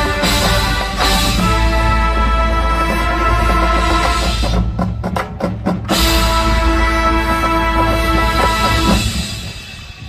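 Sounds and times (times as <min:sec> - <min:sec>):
marching band chords: 0:00.0 - 0:10.0.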